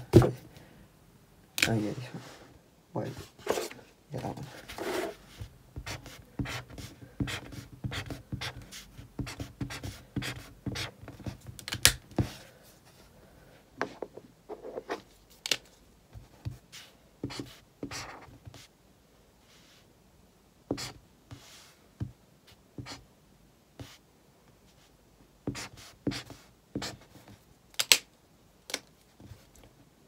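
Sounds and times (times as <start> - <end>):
highlighter scratching paper: 4.6 - 11.4, 16.2 - 18.7, 20.7 - 21.7, 23.8 - 24.0, 25.5 - 27.3.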